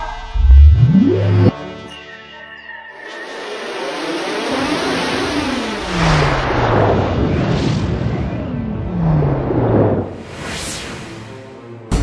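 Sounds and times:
low tone sliding down: 0:00.0 - 0:01.6.

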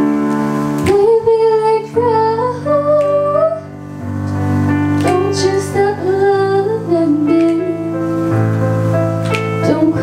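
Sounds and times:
sustained piano chords: 0:00.0 - 0:10.0
woman singing soulful melody: 0:00.8 - 0:03.8, 0:05.0 - 0:08.1, 0:09.4 - 0:10.0.

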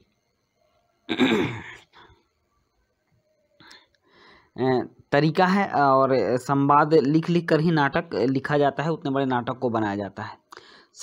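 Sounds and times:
faint noise: 0:00.0 - 0:11.0
man clearing his throat: 0:01.1 - 0:01.9.

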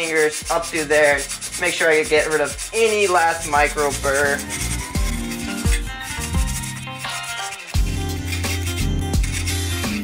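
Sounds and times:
background music with a beat: 0:00.4 - 0:10.0.

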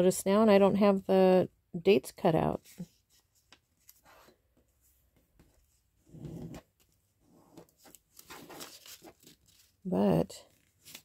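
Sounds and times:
paper rustling and creasing: 0:02.6 - 0:11.0.

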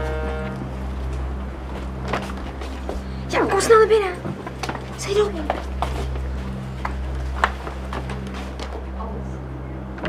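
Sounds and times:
footsteps: 0:00.0 - 0:09.2
steady low hum: 0:00.0 - 0:10.0.

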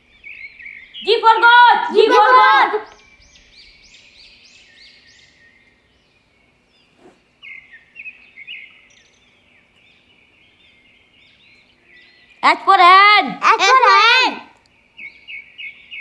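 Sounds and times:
songbirds chirping: 0:00.0 - 0:16.0.

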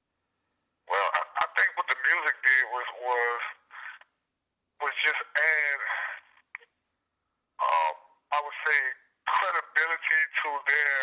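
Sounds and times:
man speaking: 0:00.9 - 0:04.0, 0:04.8 - 0:06.4, 0:07.6 - 0:11.0
voice over phone line: 0:00.9 - 0:04.0, 0:04.8 - 0:06.2, 0:07.6 - 0:11.0.

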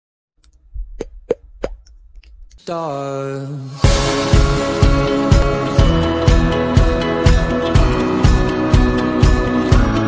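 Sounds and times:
popping sound effects: 0:00.9 - 0:01.9.

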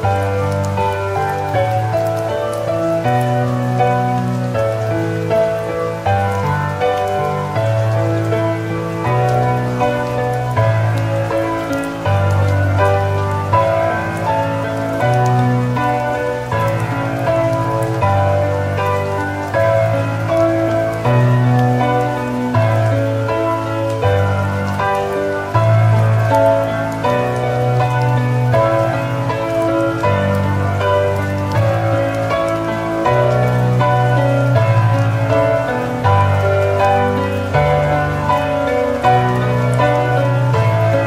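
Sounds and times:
calm piano music: 0:00.0 - 0:41.0
soft rain: 0:00.0 - 0:41.0.

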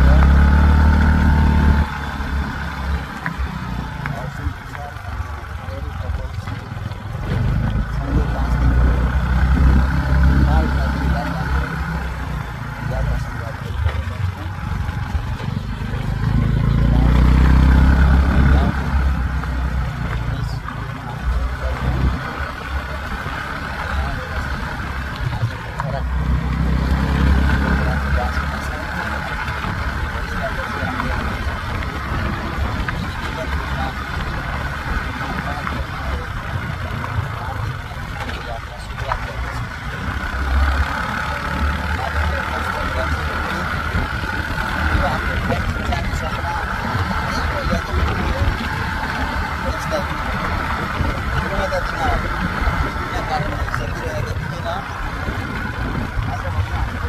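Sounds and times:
motorbike engine and road noise: 0:00.0 - 0:57.0.

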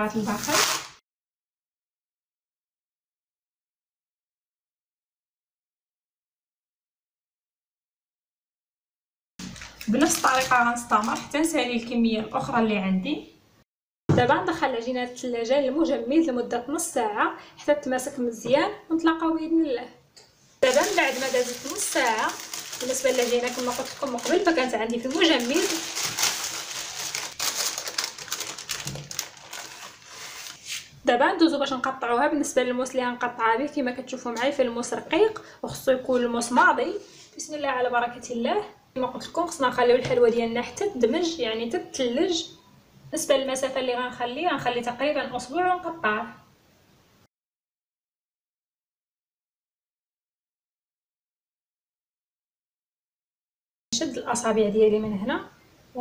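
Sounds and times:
baking paper crinkling: 0:00.0 - 0:01.0, 0:09.4 - 0:11.7, 0:20.6 - 0:30.9.

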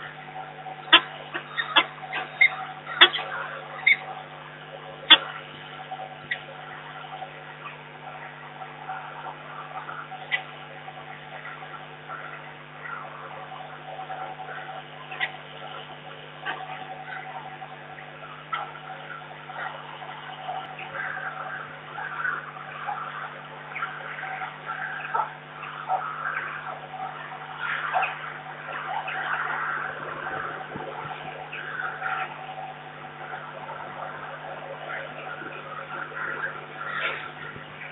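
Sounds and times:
falcon calling: 0:00.0 - 0:37.9
steady electrical hum: 0:00.0 - 0:37.9.

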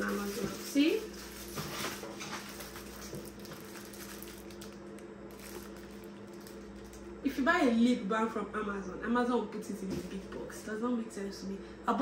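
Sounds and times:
plastic packaging crinkling: 0:00.0 - 0:07.2.

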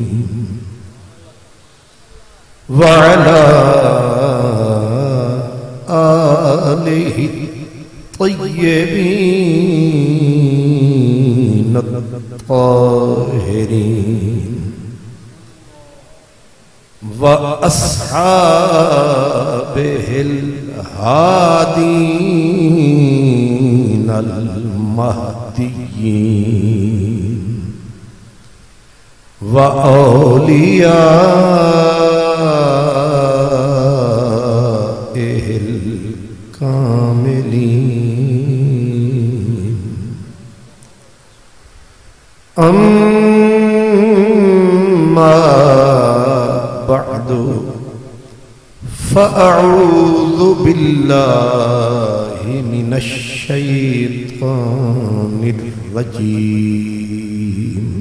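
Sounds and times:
man chanting into a microphone: 0:00.0 - 0:28.3, 0:29.4 - 0:41.1, 0:42.4 - 0:58.0
man chanting long held note: 0:15.5 - 0:16.4.

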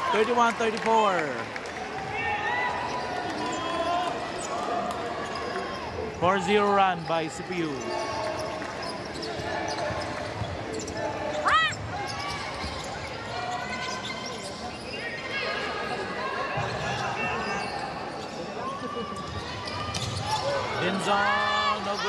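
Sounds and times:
crowd chatter and shouts: 0:00.0 - 0:22.0
sneaker squeaks: 0:06.9 - 0:22.0.

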